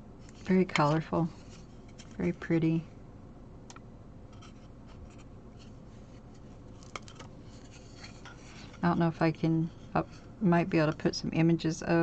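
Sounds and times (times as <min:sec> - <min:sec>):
coasters rubbing together: 0:04.4 - 0:10.4.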